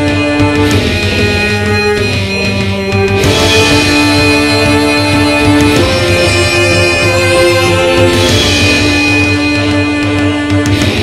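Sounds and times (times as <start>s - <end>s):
progressive metal music: 0.0s - 11.0s.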